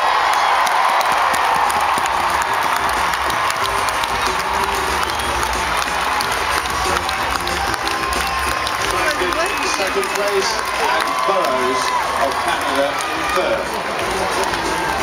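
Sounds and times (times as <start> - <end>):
crowd cheering: 0.0 - 15.0
hand clapping: 0.1 - 15.0.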